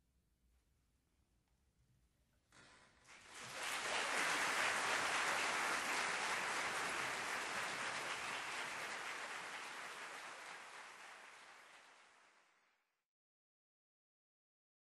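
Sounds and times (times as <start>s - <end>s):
audience applauding: 3.0s - 12.7s.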